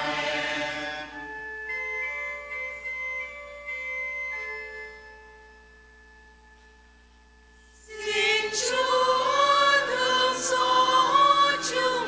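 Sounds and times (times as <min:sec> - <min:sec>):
choir singing with vibrato: 0:00.0 - 0:01.7, 0:07.8 - 0:12.0
held organ notes: 0:00.0 - 0:12.0.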